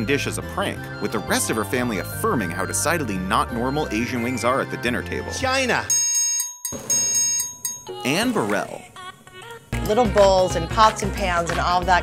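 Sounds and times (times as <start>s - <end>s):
high-pitched alarm bell ringing: 5.9s - 8.5s.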